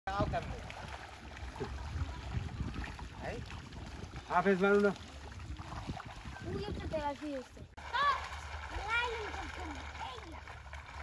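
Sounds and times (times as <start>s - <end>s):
wind rumbling on microphone: 0.1s - 4.4s, 5.0s - 7.8s
fish splashing in water: 0.1s - 11.0s.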